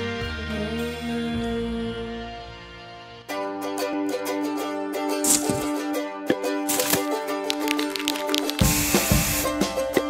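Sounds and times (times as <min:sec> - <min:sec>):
background music: 0:00.0 - 0:10.0
aerosol spray hiss: 0:08.5 - 0:09.5.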